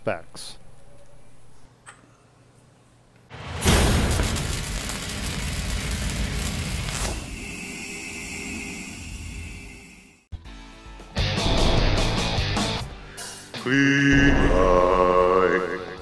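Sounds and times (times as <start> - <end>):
whooshing boom: 3.3 - 9.6
high ringing tone: 7.2 - 10.3.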